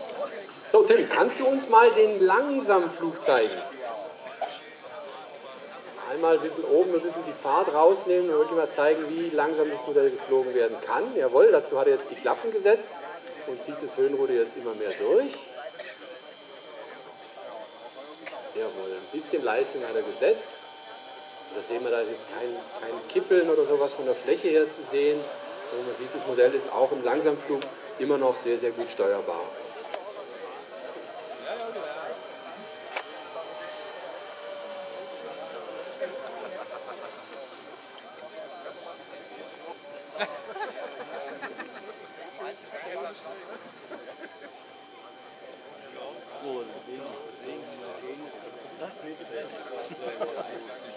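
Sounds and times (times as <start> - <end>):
electric ducted fan whine: 0.0 - 50.9.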